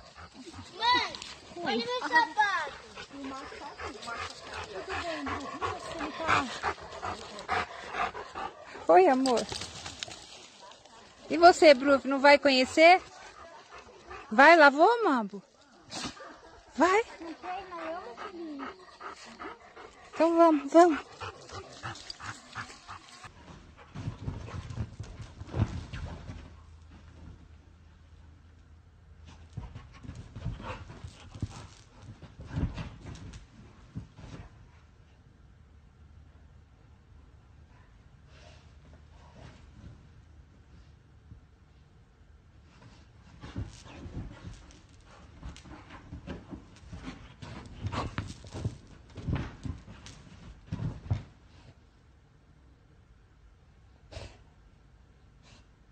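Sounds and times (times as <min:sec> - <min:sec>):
dog panting: 0:00.0 - 0:15.1, 0:16.1 - 0:26.1, 0:29.3 - 0:33.4, 0:43.3 - 0:51.2
dog bounding on a sofa: 0:23.4 - 0:27.5, 0:29.2 - 0:34.6, 0:42.7 - 0:51.7
dog thudding on sofa cushions: 0:43.3 - 0:51.4.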